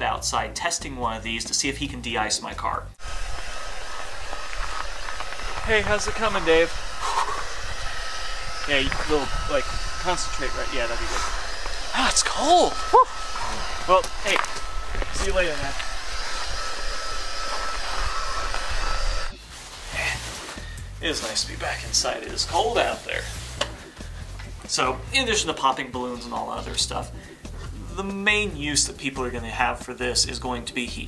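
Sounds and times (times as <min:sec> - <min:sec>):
heat gun blowing air: 0:03.0 - 0:19.3
high motor whine: 0:03.0 - 0:19.4.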